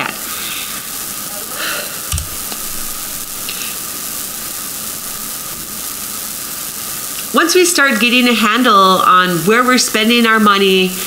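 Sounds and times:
background hiss: 0:00.0 - 0:11.0
short low thump: 0:02.1 - 0:03.4.

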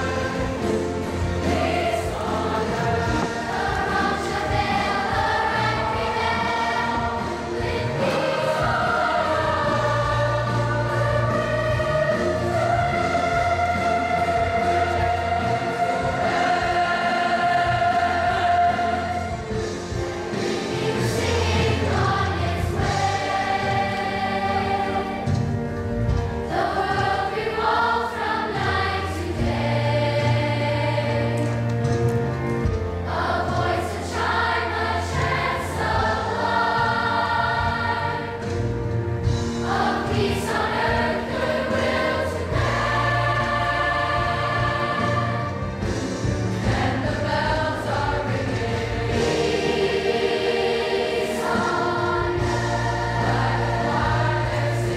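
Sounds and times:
choir singing in harmony: 0:00.0 - 0:54.9.

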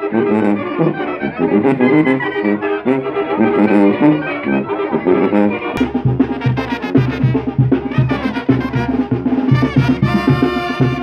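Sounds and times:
brass band playing dance tune: 0:00.0 - 0:11.0.

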